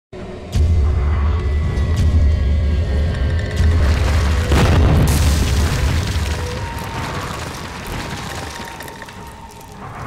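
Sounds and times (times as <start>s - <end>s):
crumbling debris scattering: 3.6s - 9.9s
heavy crash: 3.8s - 9.4s.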